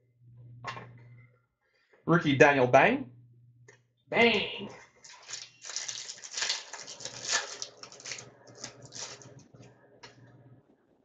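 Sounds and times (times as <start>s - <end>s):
wrapper crinkling and tearing: 5.0s - 9.4s.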